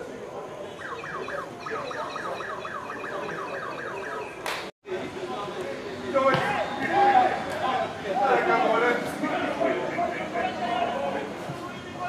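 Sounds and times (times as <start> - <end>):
downward sliding alarm tone: 0.8 - 4.4.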